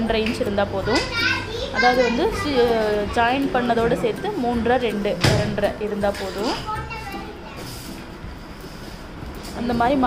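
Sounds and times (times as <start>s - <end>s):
children talking and calling: 0.8s - 4.4s, 6.1s - 8.4s.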